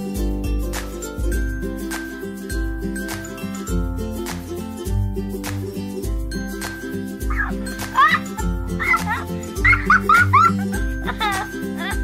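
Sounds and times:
background music with deep bass: 0.0 - 12.0
high pitch-bending calls: 7.2 - 10.2.

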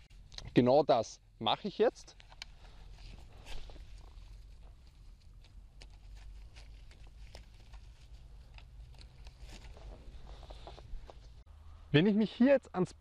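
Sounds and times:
string rustling while knotted: 2.0 - 11.5.

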